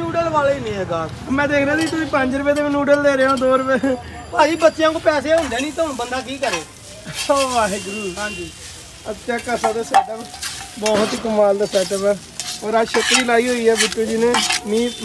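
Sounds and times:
noodles sizzling: 1.0 - 15.0
metal spatula scraping griddle: 1.7 - 15.0.

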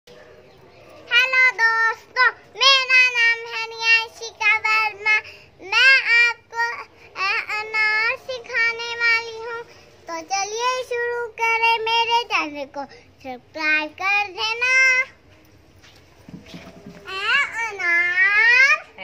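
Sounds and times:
girl singing: 1.1 - 15.2.

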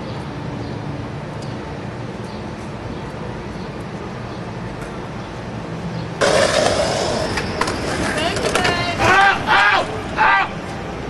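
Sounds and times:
skateboard wheels rolling on concrete: 0.1 - 11.0.

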